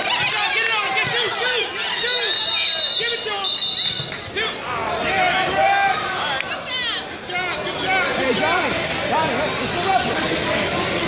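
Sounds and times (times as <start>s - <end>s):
people shouting: 4.4s - 8.7s.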